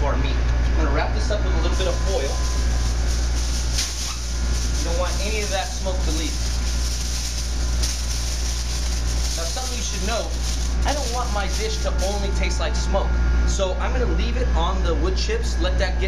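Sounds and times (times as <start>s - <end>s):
ventilation hum: 0.0s - 16.0s
aluminium foil crinkling: 1.7s - 12.6s.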